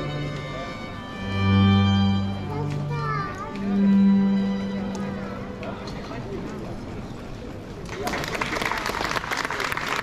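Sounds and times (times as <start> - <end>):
string ensemble playing held notes: 0.0 - 7.1
young children's voices: 2.4 - 3.6.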